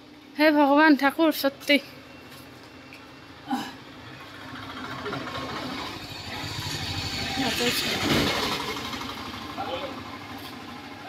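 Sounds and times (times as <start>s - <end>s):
vehicle engine rumble passing: 3.9s - 11.0s.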